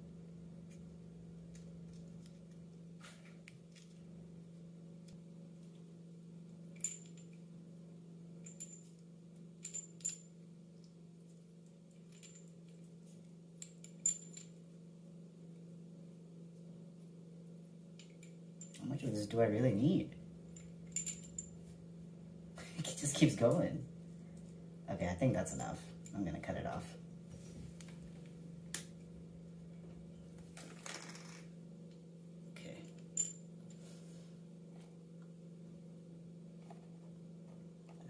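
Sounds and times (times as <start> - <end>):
faint low hum: 0.0 - 38.0.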